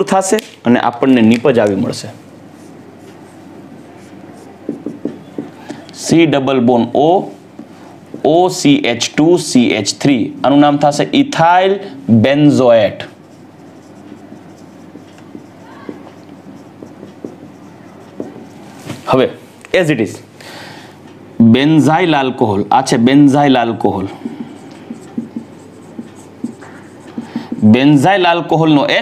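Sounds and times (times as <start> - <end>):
marker scratching on whiteboard: 2.3 - 6.0, 12.4 - 19.2, 22.8 - 28.8.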